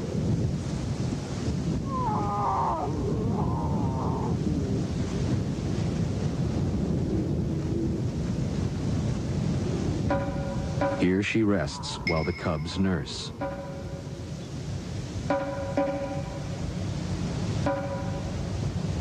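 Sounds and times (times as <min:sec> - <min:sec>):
low wind rumble: 0:00.0 - 0:19.0.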